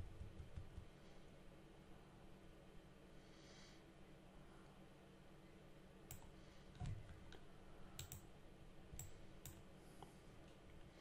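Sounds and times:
computer mouse clicks: 6.1s - 7.4s, 8.0s - 8.3s, 9.0s - 9.6s.

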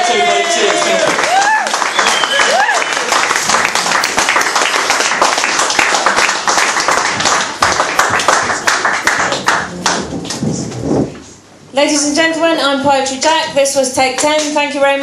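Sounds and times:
audience applause: 0.0s - 10.1s.

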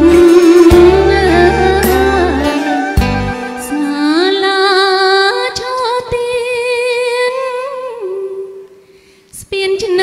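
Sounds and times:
woman singing held note with vibrato: 0.0s - 5.5s.

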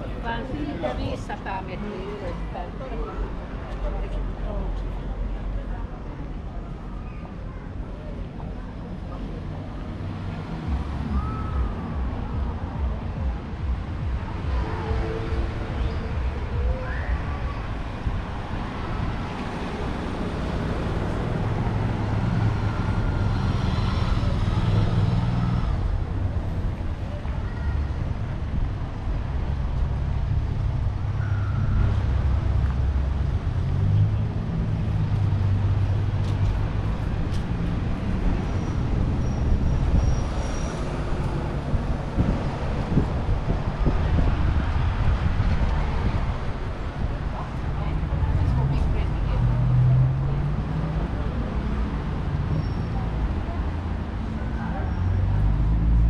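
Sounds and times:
road traffic engine hum: 0.0s - 56.0s.

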